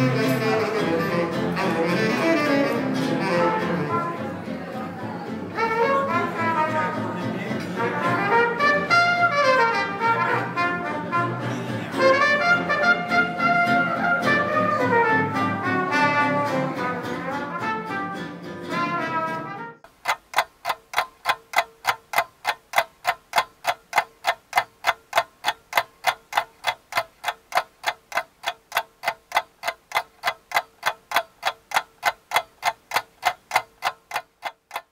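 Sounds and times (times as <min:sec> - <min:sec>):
live jazz band playing: 0:00.0 - 0:04.2, 0:05.6 - 0:19.7
ticking clock sound effect: 0:19.9 - 0:34.9.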